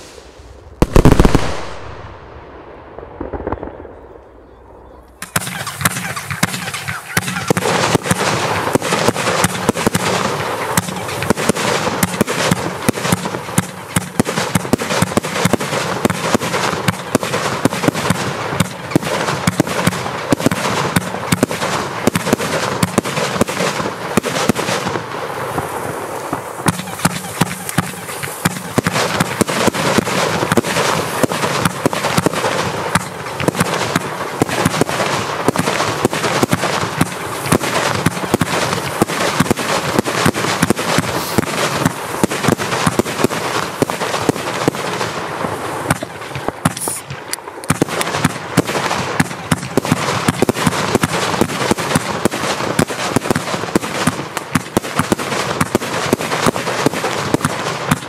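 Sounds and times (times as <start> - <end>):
firework tube launches and bursts: 0.0 - 2.1, 5.2 - 58.0.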